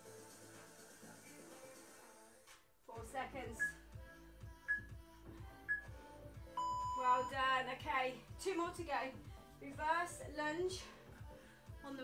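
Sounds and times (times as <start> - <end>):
background music with steady beat: 0.0 - 12.0
interval timer beeps: 5.7 - 5.9, 6.6 - 7.4.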